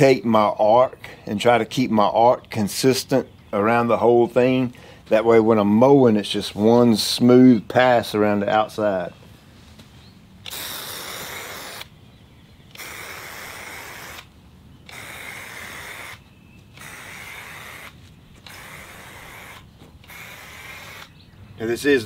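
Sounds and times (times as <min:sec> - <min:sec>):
aerosol paint spraying: 0:10.4 - 0:11.9, 0:12.7 - 0:21.2.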